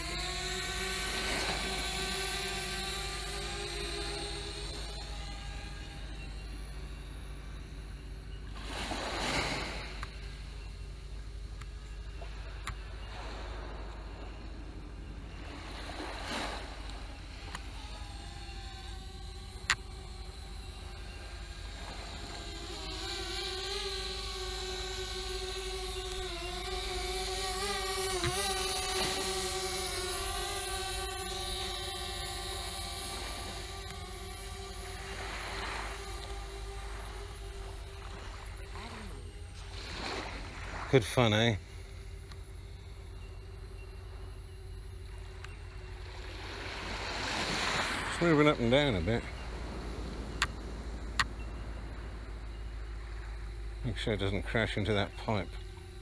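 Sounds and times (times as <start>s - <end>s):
drone propellers whining: 0.0s - 56.0s.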